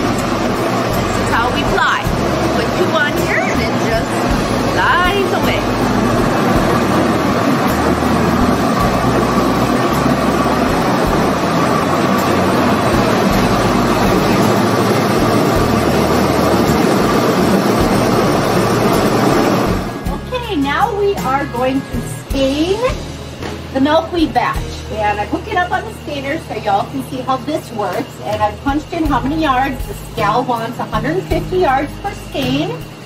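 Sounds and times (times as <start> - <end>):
spinning frame machine noise: 0.0 - 21.6.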